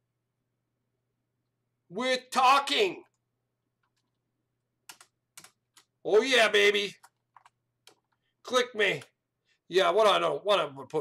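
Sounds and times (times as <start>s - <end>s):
faint keyboard keystrokes: 3.8s - 4.2s, 4.8s - 6.0s, 7.0s - 8.3s.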